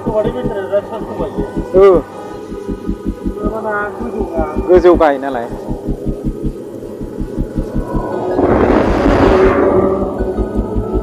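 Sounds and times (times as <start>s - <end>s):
vehicle engine throbbing: 0.0s - 11.0s.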